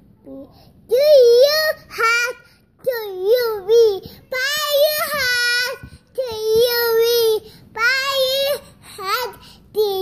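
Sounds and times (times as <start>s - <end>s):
toddler girl singing: 0.3s - 10.0s.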